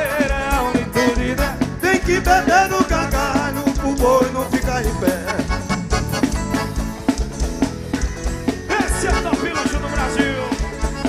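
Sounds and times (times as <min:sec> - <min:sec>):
band playing fast beat: 0:00.0 - 0:11.0.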